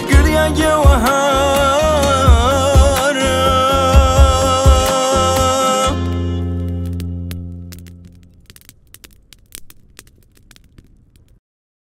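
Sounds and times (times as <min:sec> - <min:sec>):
fire crackling and popping: 0:00.0 - 0:11.4.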